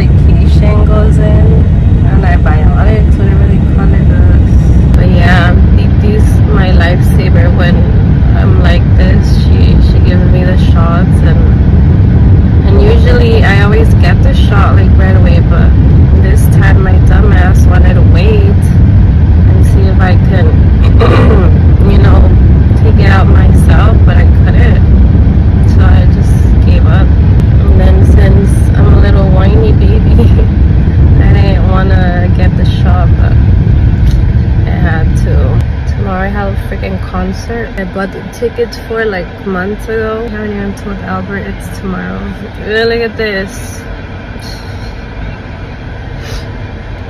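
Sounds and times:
woman talking: 0.0s - 11.6s, 12.6s - 18.8s, 19.5s - 24.9s, 25.6s - 30.5s, 31.2s - 33.4s, 34.1s - 45.0s, 46.2s - 46.5s
car cabin road rumble: 0.0s - 47.0s.

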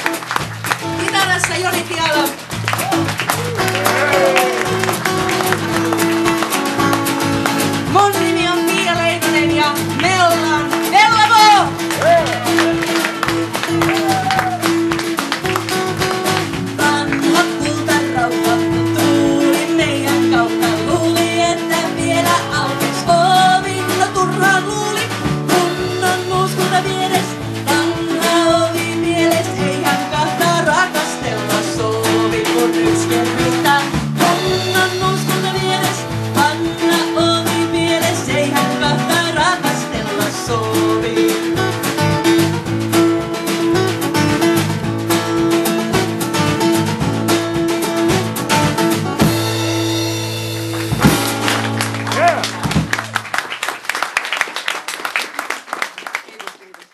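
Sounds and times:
acoustic guitar: 0.0s - 53.6s
bass guitar: 0.0s - 53.7s
drums: 0.0s - 55.1s
lead melody line: 0.8s - 24.3s.

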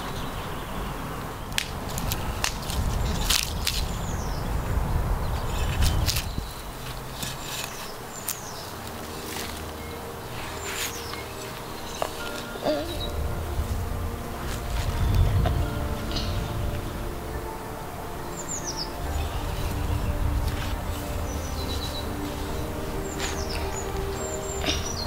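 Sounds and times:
birds chirping: 0.0s - 25.0s
trowel scraping soil: 5.4s - 13.1s, 18.4s - 25.0s.

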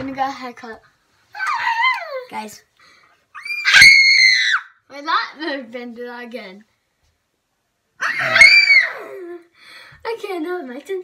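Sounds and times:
boy screaming: 3.3s - 4.8s, 8.0s - 9.3s.

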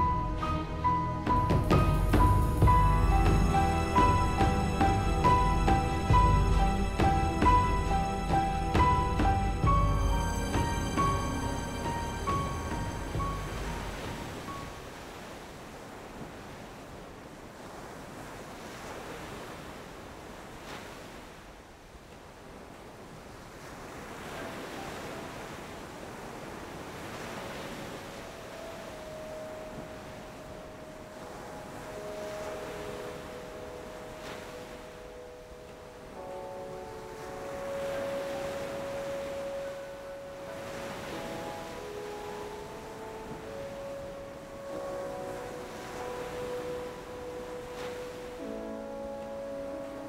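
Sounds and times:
dramatic underscore music: 0.0s - 14.8s
surf-like noise: 0.0s - 50.0s.

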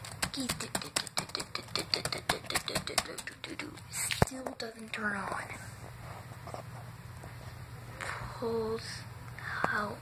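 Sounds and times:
laptop keyboard clicking rapidly: 0.0s - 3.7s.

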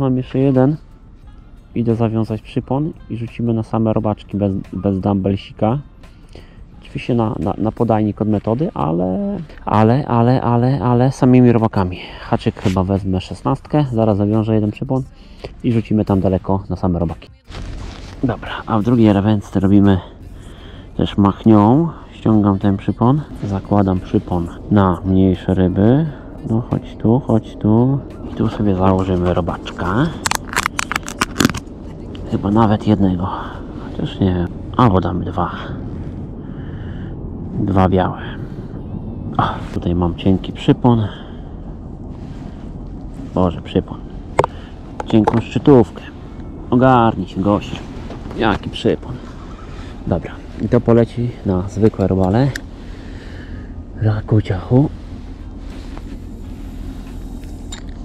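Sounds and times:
wind rumble on microphone: 6.8s - 58.0s.

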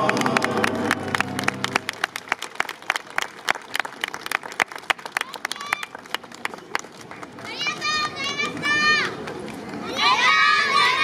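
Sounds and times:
people clapping: 0.0s - 11.0s.

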